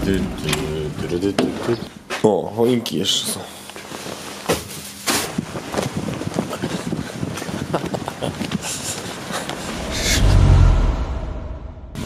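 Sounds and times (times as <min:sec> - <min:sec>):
low rumble: 0:09.5 - 0:12.0.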